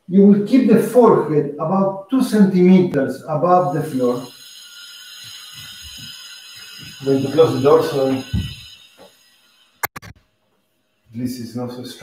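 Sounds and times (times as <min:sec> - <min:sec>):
construction work noise: 0:03.7 - 0:10.1.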